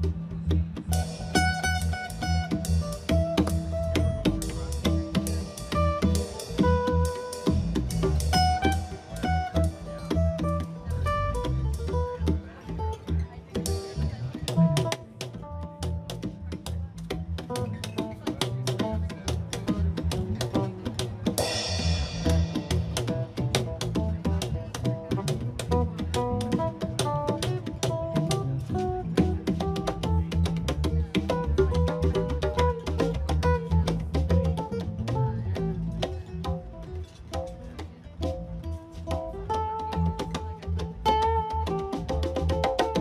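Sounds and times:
strummed acoustic guitar: 0.0s - 37.7s
congas: 0.0s - 43.0s
drum kit steady beat: 0.0s - 43.0s
electric bass: 0.0s - 43.0s.

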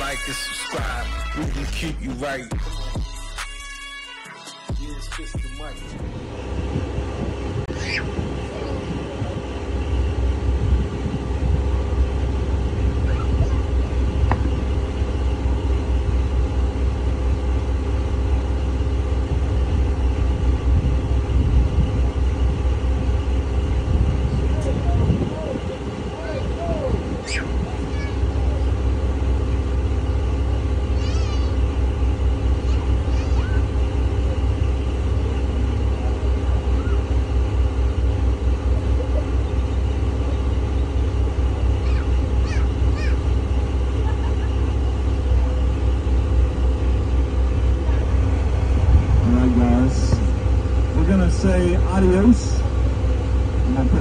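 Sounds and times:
boat motor idling: 0.0s - 4.2s, 4.8s - 54.0s.

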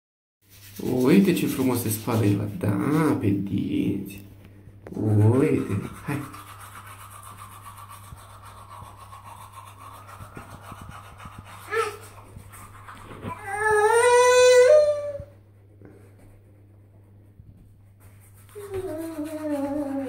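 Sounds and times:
child crying: 13.3s - 15.3s
child's long vocal call: 18.6s - 20.0s.

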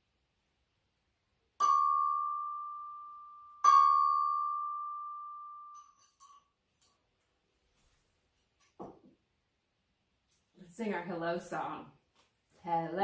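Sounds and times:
chime bar ringing: 1.6s - 6.4s.

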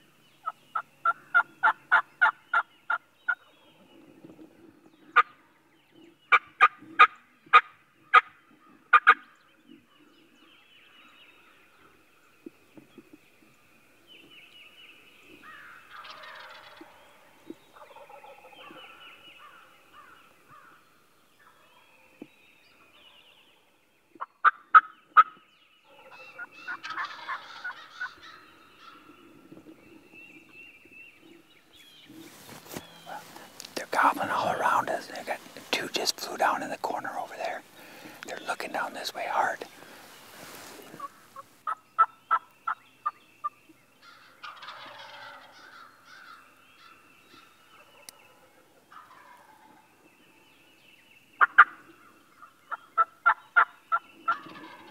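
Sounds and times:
wild turkeys calling: 0.4s - 3.6s, 6.3s - 9.3s, 15.3s - 20.8s, 24.2s - 30.1s, 31.2s - 50.1s, 51.4s - 54.9s.

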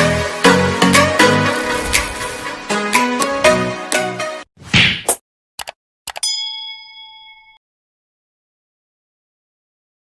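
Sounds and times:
intro music: 0.0s - 4.4s
bright bell-like ding: 6.2s - 7.6s.

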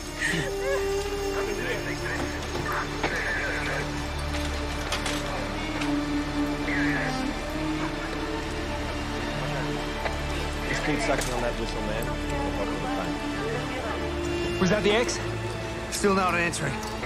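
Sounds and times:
dramatic low music: 0.0s - 17.0s.

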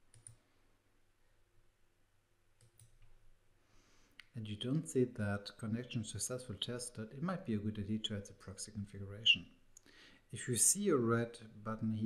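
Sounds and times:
computer mouse clicks: 0.1s - 0.4s, 2.6s - 3.1s.

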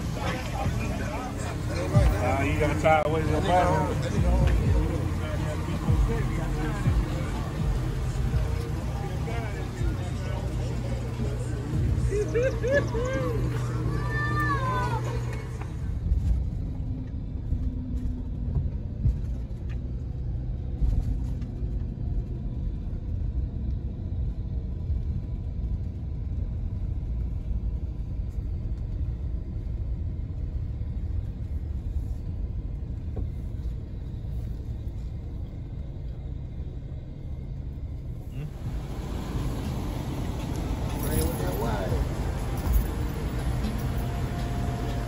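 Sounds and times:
motor vehicle rumble: 0.0s - 45.0s.

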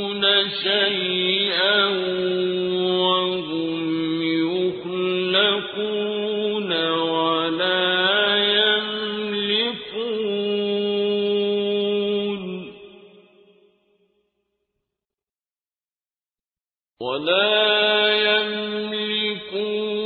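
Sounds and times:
man chanting recitation: 0.0s - 12.7s, 17.0s - 20.0s.

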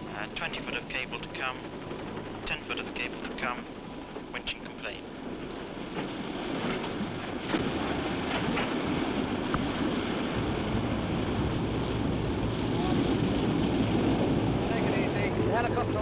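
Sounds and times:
boat engine drone: 0.0s - 16.0s
sea noise: 0.0s - 16.0s
wind: 0.0s - 16.0s.

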